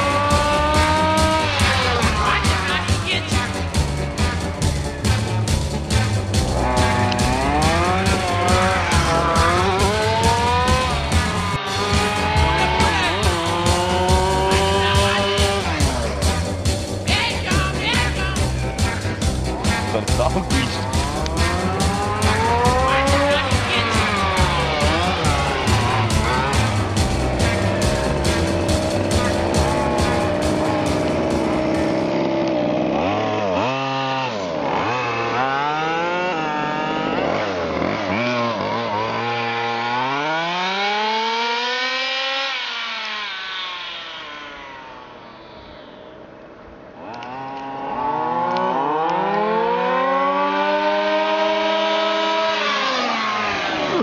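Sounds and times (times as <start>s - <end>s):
background music with steady beat: 0.0s - 32.2s
rc car engines revving: 0.0s - 54.0s.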